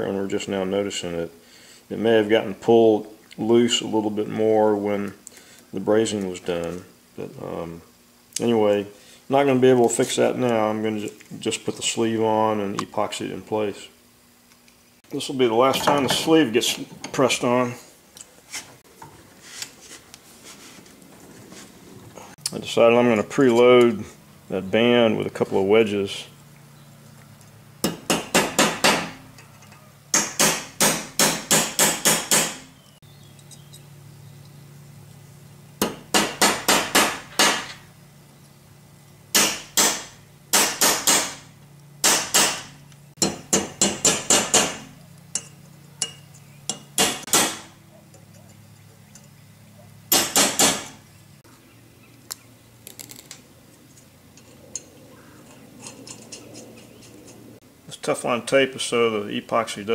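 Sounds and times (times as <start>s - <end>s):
hammer tapping a metal punch: 43.2s - 47.6s.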